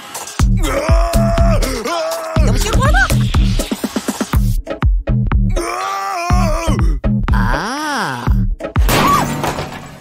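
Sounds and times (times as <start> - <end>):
wordless voice groaning: 0.6 - 3.2, 5.5 - 8.5
electronic dance music: 2.4 - 4.5
voice wailing: 5.6 - 8.5.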